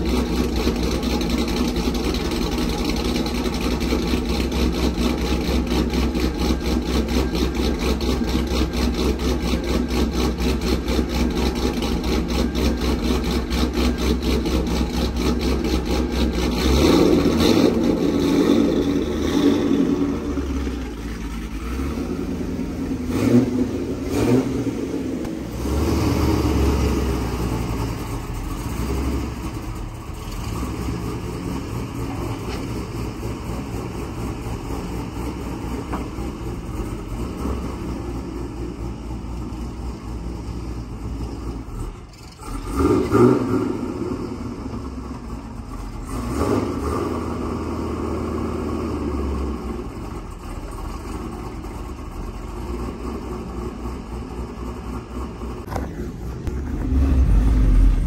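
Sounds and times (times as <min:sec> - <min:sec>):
truck engine choppy idle and revs: 0:00.0 - 0:58.0.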